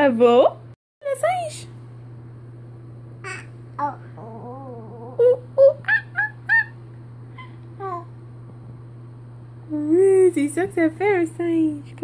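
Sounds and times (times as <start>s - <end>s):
baby making monkey hoots: 3.2s - 6.8s.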